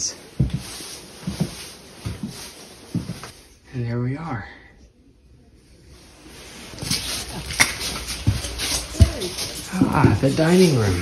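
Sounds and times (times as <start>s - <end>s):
footsteps walking: 0.0s - 3.4s, 6.3s - 11.0s.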